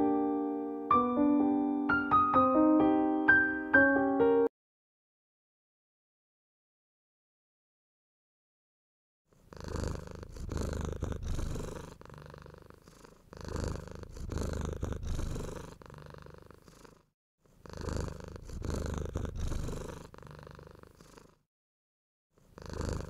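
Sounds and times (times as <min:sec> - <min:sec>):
cat purring: 0:09.3 - 0:21.4, 0:22.4 - 0:23.0.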